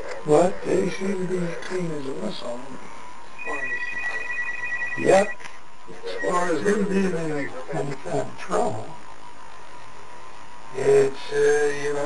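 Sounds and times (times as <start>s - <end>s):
electronic telephone ringing: 3.4s - 5.4s.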